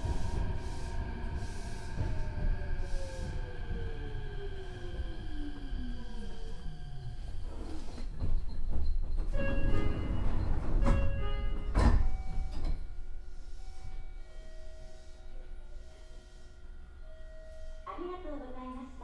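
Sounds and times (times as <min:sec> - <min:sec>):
train wheels rumbling on rails: 0:00.0 - 0:16.4.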